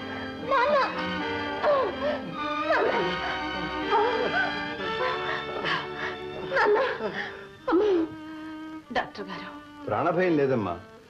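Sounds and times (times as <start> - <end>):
woman crying: 0.3 - 8.2.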